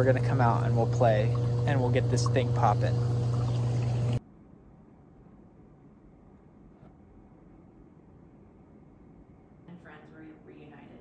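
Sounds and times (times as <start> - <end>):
hot tub pump humming: 0.0 - 4.2.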